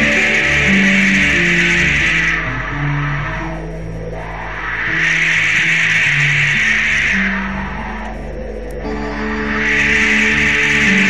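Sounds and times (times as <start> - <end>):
high hissing wash of sound: 0.0 - 11.0
low bass notes: 0.0 - 11.0.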